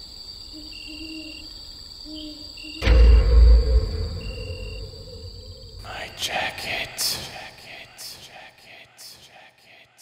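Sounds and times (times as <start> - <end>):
high-pitched insect drone: 0.0 - 9.4
shrill insect trill: 0.0 - 10.0.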